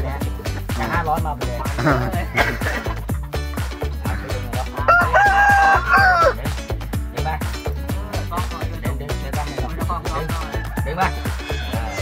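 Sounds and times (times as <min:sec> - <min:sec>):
background music with steady beat: 0:00.0 - 0:12.0
rooster crowing: 0:04.9 - 0:06.4, 0:10.2 - 0:11.8.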